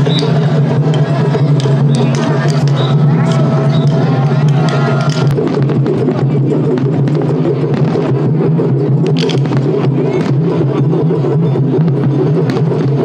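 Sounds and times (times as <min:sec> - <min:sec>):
crowd din: 0:00.0 - 0:13.0
taiko drumming: 0:00.0 - 0:13.0.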